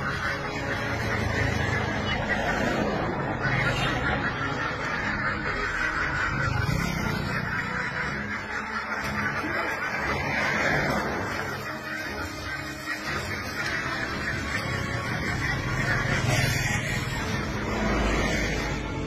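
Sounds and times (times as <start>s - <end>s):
flock of ducks quacking: 0.0s - 19.0s.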